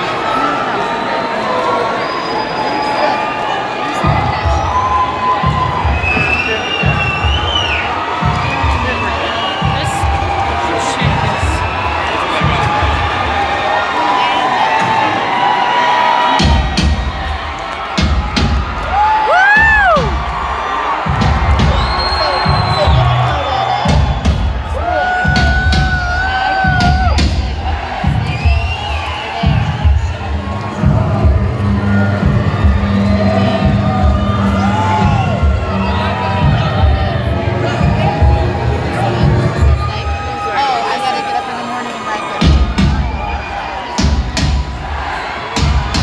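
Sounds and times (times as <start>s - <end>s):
crowd cheering: 0.0s - 46.0s
whistles: 1.7s - 3.6s, 4.4s - 9.8s, 21.6s - 24.5s, 28.2s - 30.0s
high shouts: 2.4s - 30.5s
heavy low beat: 16.4s - 40.1s, 42.4s - 46.0s
loud live industrial rock music: 16.4s - 40.4s.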